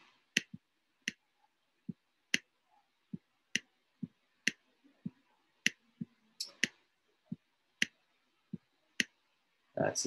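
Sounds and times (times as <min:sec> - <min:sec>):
stylus pen tapping on screen: 0:00.4 - 0:01.2.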